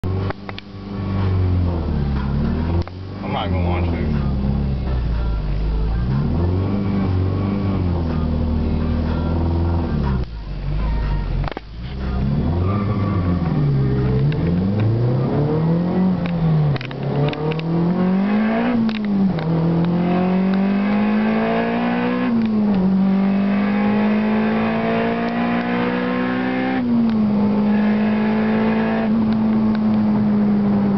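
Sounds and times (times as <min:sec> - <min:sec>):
car engine running: 0:00.0 - 0:30.9.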